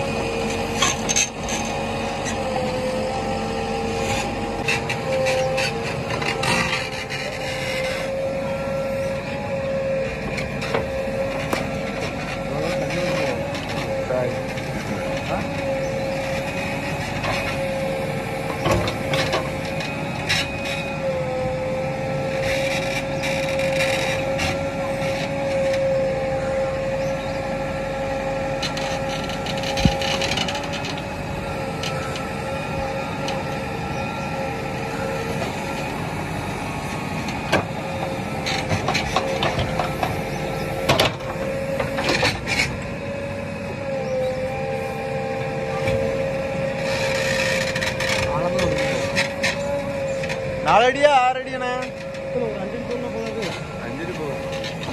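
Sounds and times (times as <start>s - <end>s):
backhoe loader engine whine: 0.0s - 54.9s.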